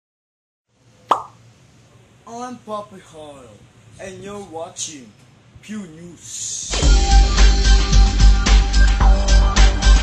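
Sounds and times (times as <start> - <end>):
faint low room hum: 0.7 - 6.7
sharp short pop: 1.1 - 1.4.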